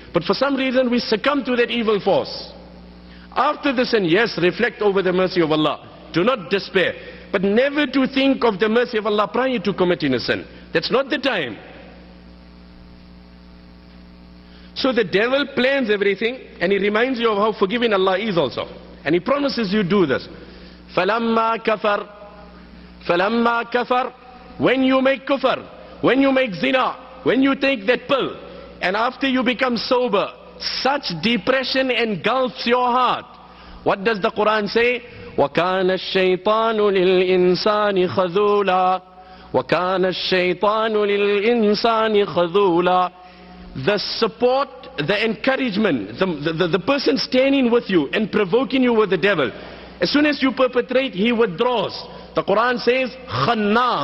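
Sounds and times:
electrical mains hum: 0.0s - 54.0s
faint hiss: 9.3s - 21.2s.

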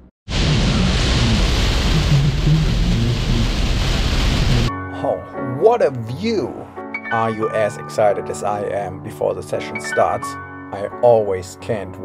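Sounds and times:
heavy rain on a car roof: 0.3s - 4.7s.

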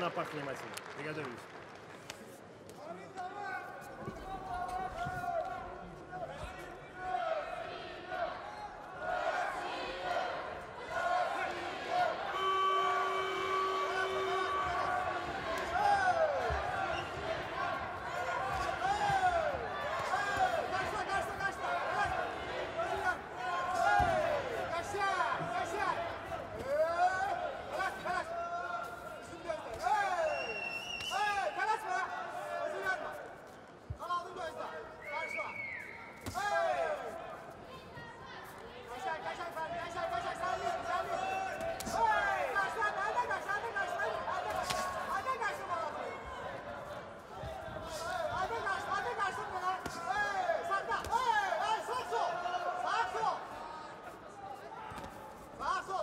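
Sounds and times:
people shouting: 9.0s - 33.0s, 39.8s - 46.6s, 47.4s - 53.8s.

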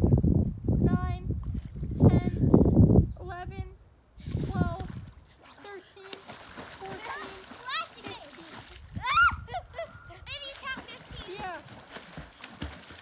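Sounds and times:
water splashing: 4.2s - 13.0s
children crying and shouting: 6.9s - 11.8s.

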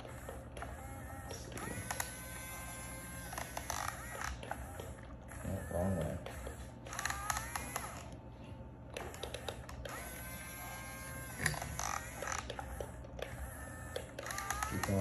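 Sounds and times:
toy excavator motors whining: 0.0s - 15.0s
small clicks and scrapes: 6.3s - 8.2s, 8.9s - 15.0s.

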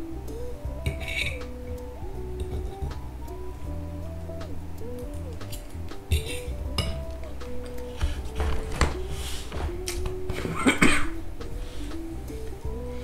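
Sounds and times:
background music with low bass: 0.0s - 13.0s.

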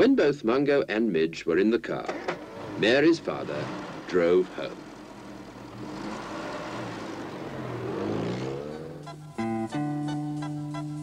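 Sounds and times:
car engine accelerating: 2.1s - 10.0s.

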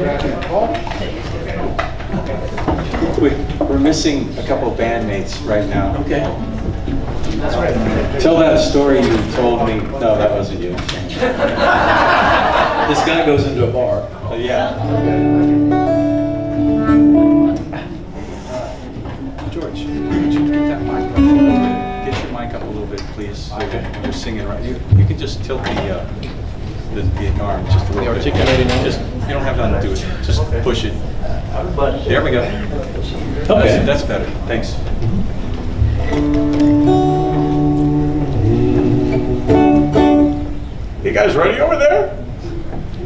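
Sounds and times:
murmur of voices: 0.0s - 43.0s
acoustic guitar chords ringing: 14.7s - 18.1s, 19.7s - 22.6s, 35.1s - 40.9s.

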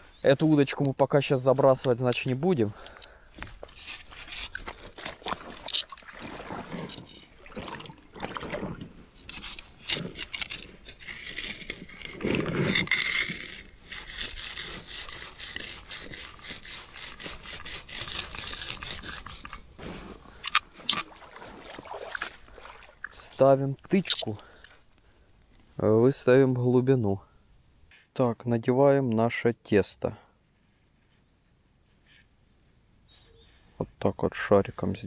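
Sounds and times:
fishing tackle clicking and rattling: 1.8s - 6.0s, 9.2s - 19.7s
scraping and rubbing: 3.4s - 20.4s.

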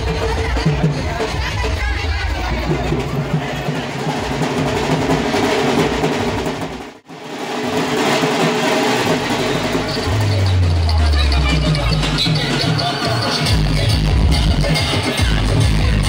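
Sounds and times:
crowd voices: 0.0s - 6.4s, 8.0s - 16.0s
loud dj music: 9.4s - 16.0s.

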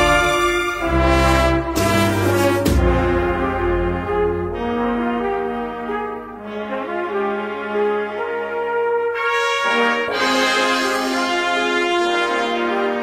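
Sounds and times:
band playing processional march: 0.0s - 13.0s
brass sustained chords: 0.0s - 13.0s.

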